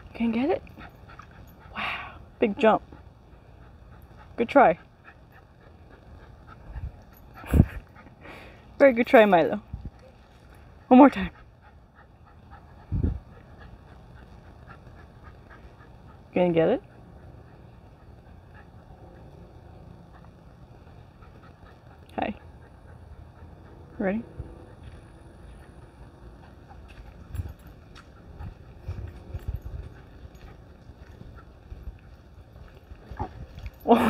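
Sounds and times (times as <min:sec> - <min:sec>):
wind buffeting microphone: 0:06.5 - 0:08.0, 0:12.8 - 0:14.2, 0:26.9 - 0:34.0.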